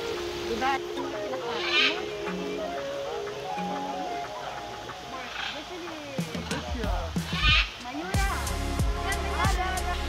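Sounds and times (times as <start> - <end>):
pop music with sung vocals: 6.1 - 10.0
heavy bass beat: 6.2 - 10.0.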